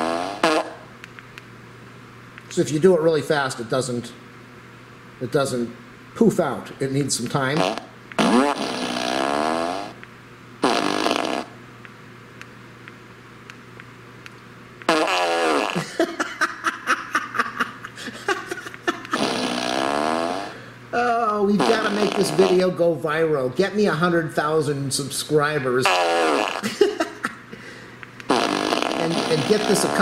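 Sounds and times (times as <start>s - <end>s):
fart sounds from a speaker: 0.0s - 0.8s, 7.5s - 10.0s, 10.6s - 11.6s, 14.9s - 15.9s, 19.1s - 20.6s, 21.6s - 22.7s, 25.8s - 26.7s, 28.3s - 30.0s.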